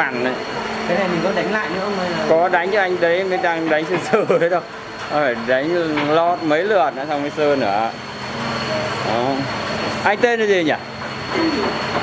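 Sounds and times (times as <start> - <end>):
mechanical rumble and hiss: 0.0 - 12.0.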